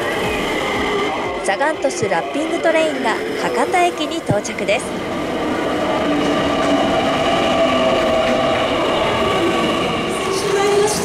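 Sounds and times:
electric train pulling in: 0:00.0 - 0:11.0.

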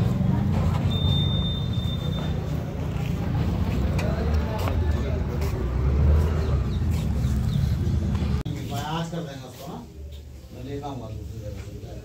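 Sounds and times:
low street rumble: 0:00.0 - 0:12.0.

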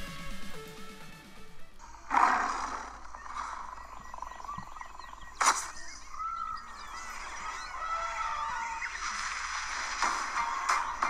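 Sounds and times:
electronic background music: 0:00.0 - 0:11.0
birds chirping: 0:01.7 - 0:11.0
big cat roar: 0:02.0 - 0:03.8.

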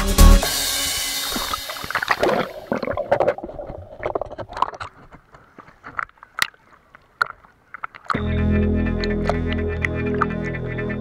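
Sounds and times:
sea water sloshing and splashing: 0:01.2 - 0:08.1
water drips and bubbly pops: 0:01.3 - 0:05.1.

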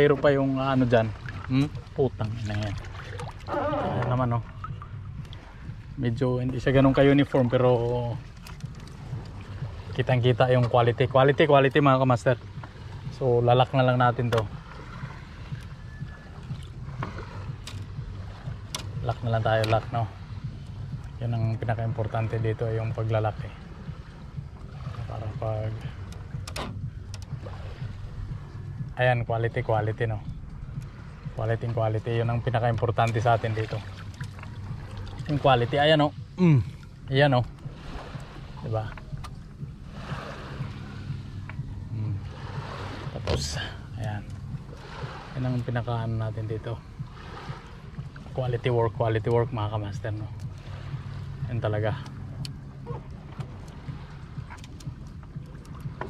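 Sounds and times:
low rumble: 0:00.0 - 0:56.0
water sloshing against boat hull: 0:00.0 - 0:56.0.

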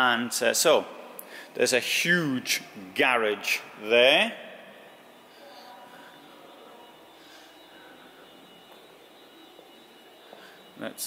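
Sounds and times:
high-pitched steady whine: 0:00.0 - 0:11.0.

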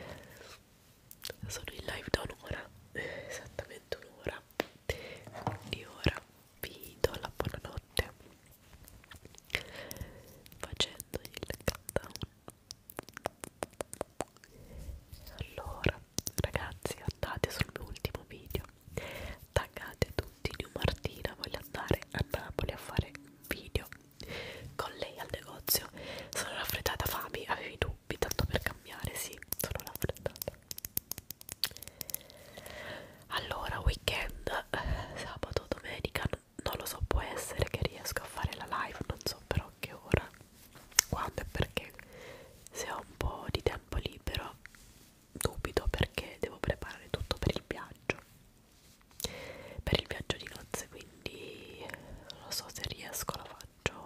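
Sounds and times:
woman whispering: 0:01.2 - 0:08.3, 0:09.5 - 0:12.6, 0:14.4 - 0:30.6, 0:33.2 - 0:40.4, 0:41.0 - 0:44.7, 0:45.4 - 0:48.3, 0:49.8 - 0:54.0.

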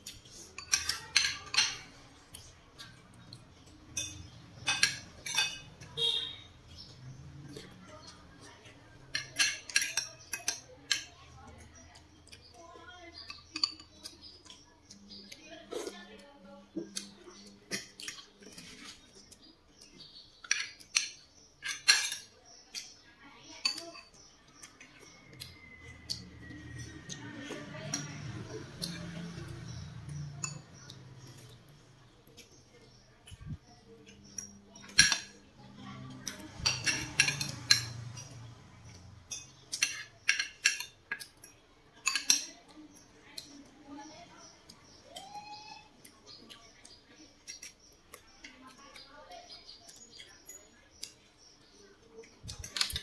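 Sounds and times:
cutlery clinking on dishes: 0:00.0 - 0:03.0, 0:03.6 - 0:06.9, 0:09.0 - 0:11.7, 0:13.3 - 0:14.6, 0:16.8 - 0:23.0, 0:23.6 - 0:31.6, 0:33.3 - 0:35.5, 0:36.1 - 0:43.6, 0:52.4 - 0:53.0
metal spoon clinking on plate: 0:00.6 - 0:01.9, 0:03.9 - 0:06.2, 0:09.1 - 0:11.1, 0:34.1 - 0:35.4, 0:36.3 - 0:42.6.

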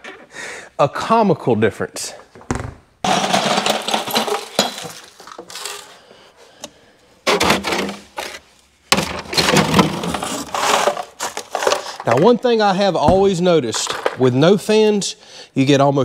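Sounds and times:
ice cubes clattering in plastic bins: 0:03.0 - 0:06.1, 0:07.2 - 0:14.8.

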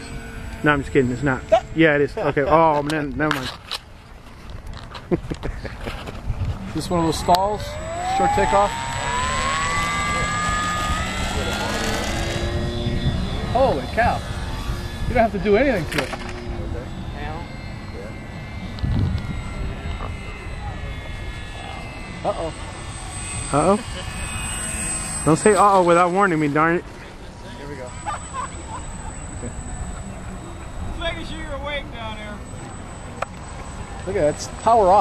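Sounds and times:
model plane electric motor whine: 0:00.0 - 0:35.0
wind buffeting microphone: 0:04.0 - 0:17.4, 0:18.5 - 0:24.7.

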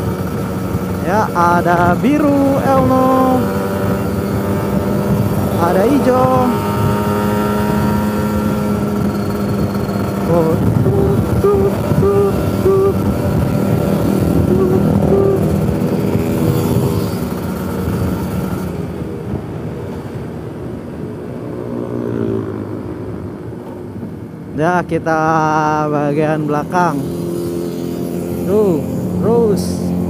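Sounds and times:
motorcycle engine running: 0:00.0 - 0:19.5, 0:26.5 - 0:30.0
wind noise: 0:00.0 - 0:24.6.

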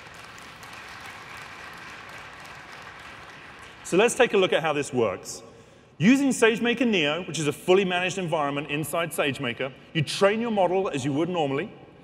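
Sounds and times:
large audience applauding: 0:00.0 - 0:04.6.

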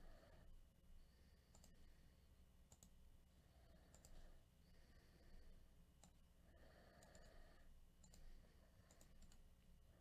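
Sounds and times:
faint low hum: 0:00.0 - 0:10.0
computer mouse clicks: 0:01.5 - 0:01.8, 0:02.6 - 0:03.0, 0:03.8 - 0:04.2, 0:06.0 - 0:06.2, 0:06.9 - 0:07.4, 0:08.0 - 0:09.5.

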